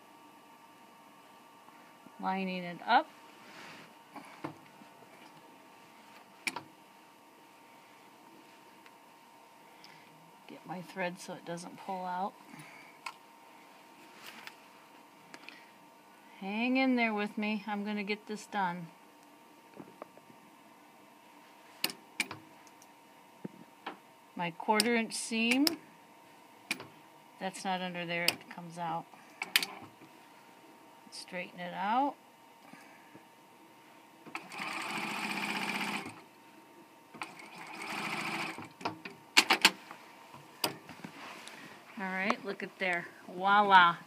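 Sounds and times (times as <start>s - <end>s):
sewing machine stitching: 34.3s - 36.2s, 37.2s - 38.7s.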